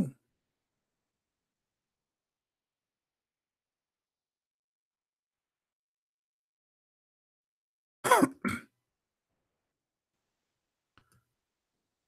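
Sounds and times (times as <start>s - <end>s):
man coughing: 8.0s - 8.7s.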